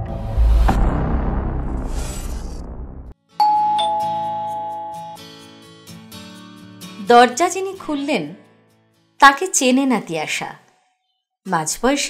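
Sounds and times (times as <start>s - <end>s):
low rumble of logo sting: 0.0s - 3.2s
two-note doorbell chime: 3.4s - 5.3s.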